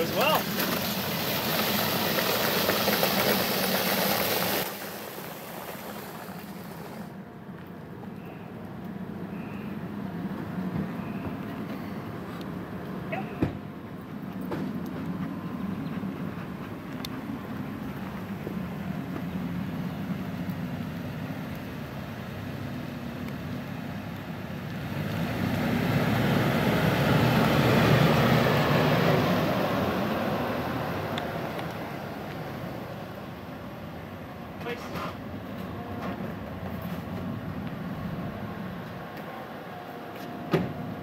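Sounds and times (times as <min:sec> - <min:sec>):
low outdoor hum: 0:00.0 - 0:41.0
vehicle passing: 0:24.8 - 0:33.6.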